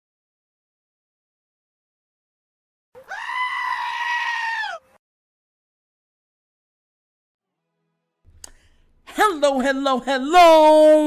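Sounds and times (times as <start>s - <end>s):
long high-pitched cry: 3.0s - 5.0s.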